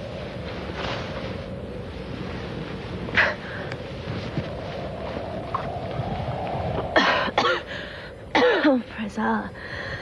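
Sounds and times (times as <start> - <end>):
person coughing hoarsely: 7.0 - 7.7, 8.3 - 8.8.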